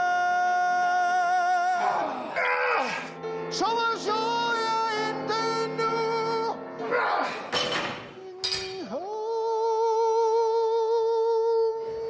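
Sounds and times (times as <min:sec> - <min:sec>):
man singing long high note: 0:00.0 - 0:02.2, 0:08.2 - 0:11.9.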